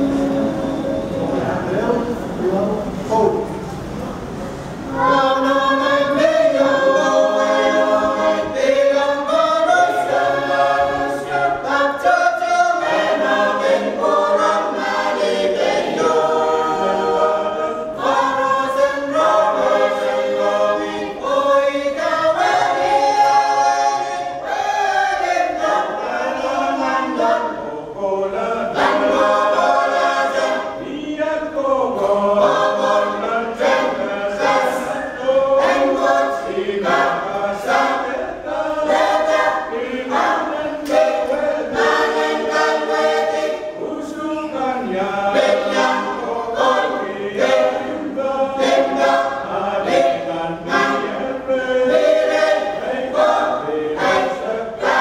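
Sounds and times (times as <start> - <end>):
choir singing a hymn: 0.0 - 2.2, 4.2 - 55.0.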